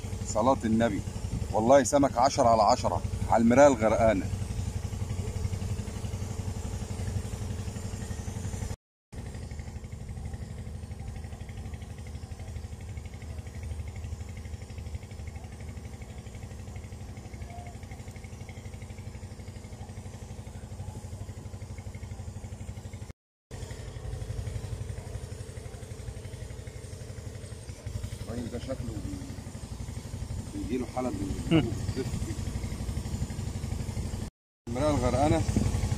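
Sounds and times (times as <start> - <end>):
engine droning steadily: 0.0 - 35.9.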